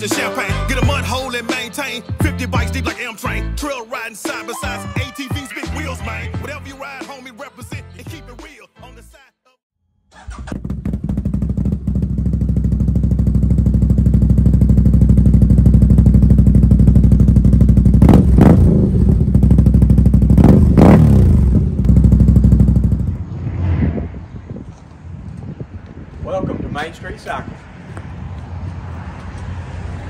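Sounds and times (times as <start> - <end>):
engine running and revving: 10.2 - 25.4.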